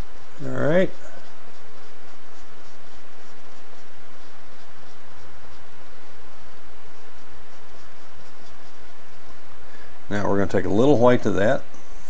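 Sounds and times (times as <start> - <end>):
paintbrush bristles scratching paper: 0.0 - 9.6.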